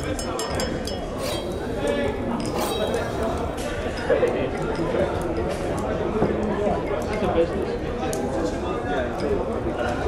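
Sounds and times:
glasses clinking: 0.4 - 4.1
crowd chattering: 1.0 - 7.0.

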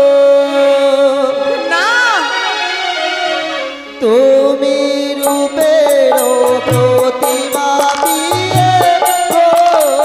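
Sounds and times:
keyboard melody: 0.0 - 10.0
percussion beat: 5.2 - 10.0.

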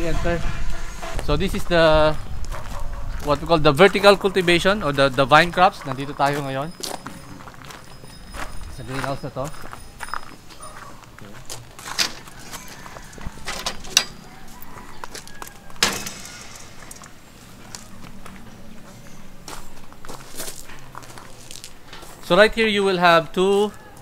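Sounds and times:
footsteps scuffing: 5.4 - 12.9, 17.6 - 22.3.

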